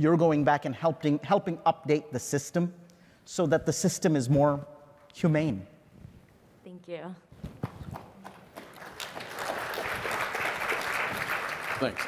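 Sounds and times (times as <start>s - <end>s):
audience applause: 8.2s - 12.0s.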